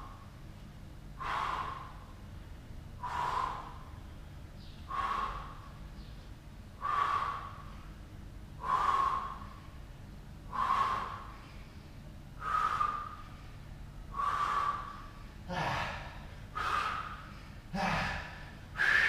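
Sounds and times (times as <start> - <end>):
man breathing hard: 1.1 - 2.3, 2.9 - 19.0.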